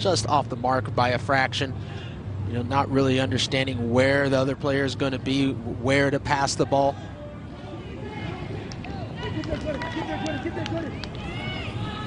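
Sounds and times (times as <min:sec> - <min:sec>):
outdoor background: 0:00.0 - 0:12.0
players shouting: 0:06.4 - 0:12.0.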